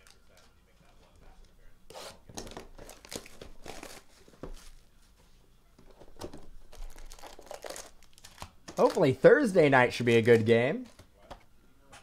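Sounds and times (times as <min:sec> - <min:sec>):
card pack wrapping crinkling: 0:02.4 - 0:04.8, 0:06.6 - 0:09.2.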